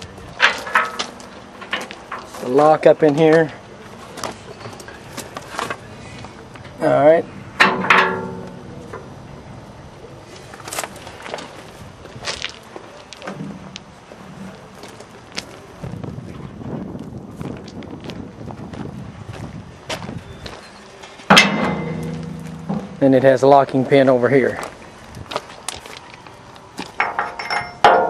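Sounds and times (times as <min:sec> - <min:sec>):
steel knocking and clanking: 0:00.4 - 0:02.4, 0:07.6 - 0:09.2, 0:21.3 - 0:23.4, 0:27.0 - 0:28.0
footsteps on gravel: 0:10.4 - 0:13.9, 0:14.6 - 0:27.0.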